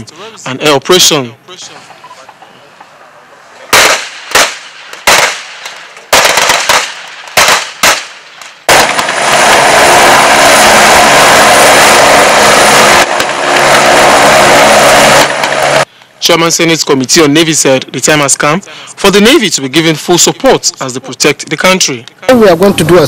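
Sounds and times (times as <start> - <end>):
sharp gunshots: 3.7 - 15.8
helicopter hovering: 8.7 - 15.9.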